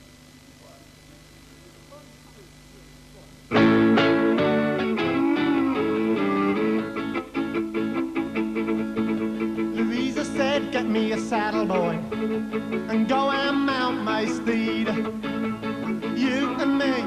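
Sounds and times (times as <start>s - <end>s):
faint steady hum: 0.0s - 17.0s
strummed acoustic guitar: 3.5s - 17.0s
bowed fiddle: 4.2s - 17.0s.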